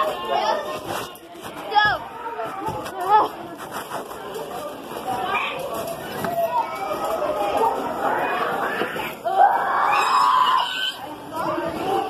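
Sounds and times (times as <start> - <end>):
young voices chattering: 0.0 - 12.0.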